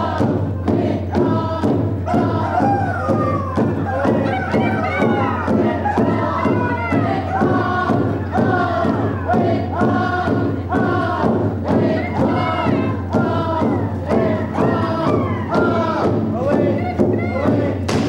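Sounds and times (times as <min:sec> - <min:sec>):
group singing in unison: 0:00.0 - 0:18.0
steady drumbeat: 0:00.0 - 0:18.0.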